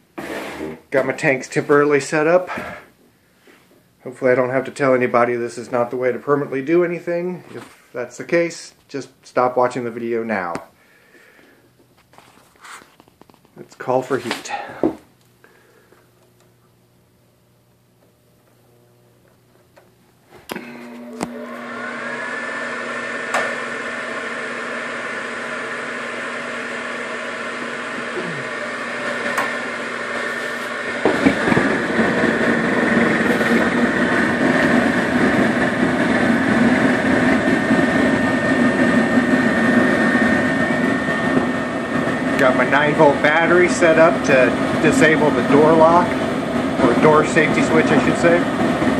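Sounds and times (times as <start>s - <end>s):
inducer motor whining hum: 14.4s - 48.9s
gas burners rushing: 20.4s - 48.9s.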